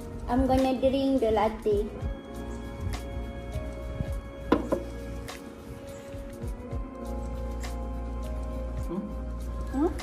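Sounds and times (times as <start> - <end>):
background music: 0.0 - 10.0
paper cup knocking on table: 4.5 - 5.0.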